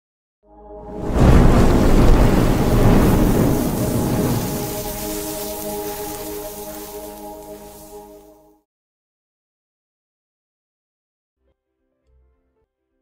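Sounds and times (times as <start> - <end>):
sustained chord ringing: 0.4 - 1.6, 4.8 - 8.6
deep rumbling boom: 0.9 - 7.6.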